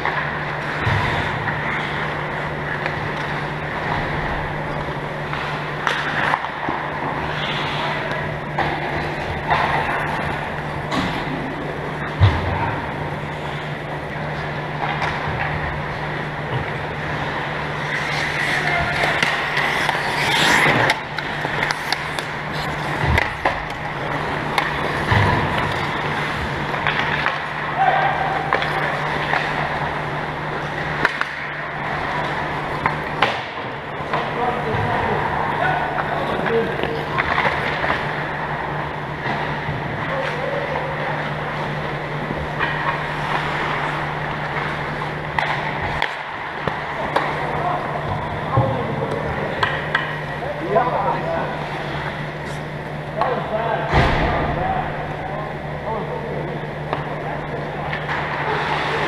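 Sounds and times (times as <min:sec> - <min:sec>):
steady low hum: 0:00.0 - 0:59.0
skates scraping across ice: 0:17.0 - 0:27.7
sticks and puck clicking: 0:17.8 - 0:27.5, 0:49.6 - 0:50.2.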